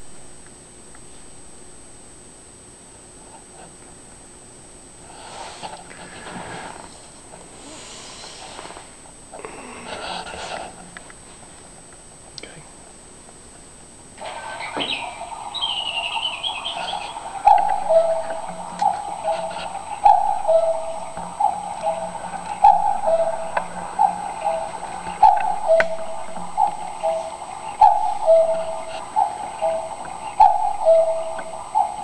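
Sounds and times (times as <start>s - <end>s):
cuckoo clock call: 14.2s - 32.0s.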